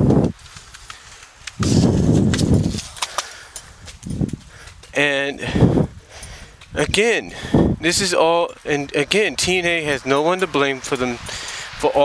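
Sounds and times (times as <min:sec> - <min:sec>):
wind buffeting a microphone: 0:00.0 - 0:00.8, 0:01.5 - 0:03.0, 0:03.6 - 0:08.2, 0:08.8 - 0:12.0.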